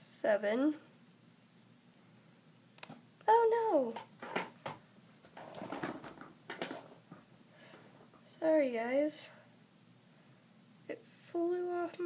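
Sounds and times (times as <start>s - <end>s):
soft rustling: 3.9s - 8.4s
plastic items clicking and tapping: 4.0s - 7.2s.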